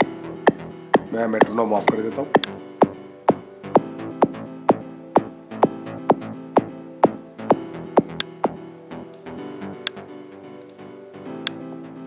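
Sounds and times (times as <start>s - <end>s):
bass line: 0.0s - 10.4s
synth pad and piano chords: 0.0s - 12.0s.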